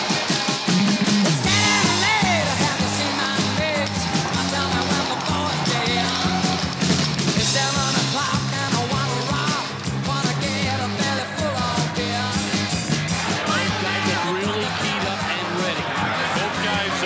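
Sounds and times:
rock music: 0:00.0 - 0:17.0
person singing: 0:01.4 - 0:15.3.

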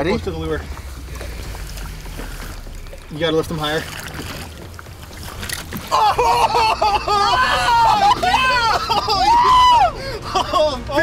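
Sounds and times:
wind and water around boat: 0:00.0 - 0:11.0.

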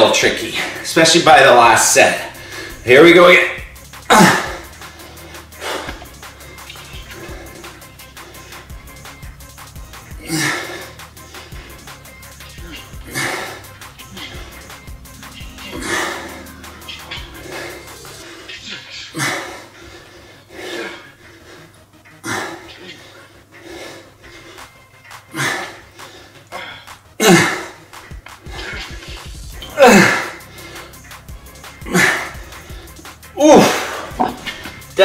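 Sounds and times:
faint background music: 0:00.0 - 0:35.0.

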